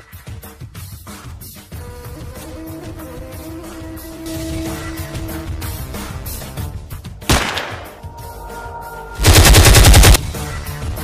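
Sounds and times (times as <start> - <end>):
background music: 0.0 - 11.0
automatic rifle fire: 7.3 - 7.9, 9.2 - 10.2.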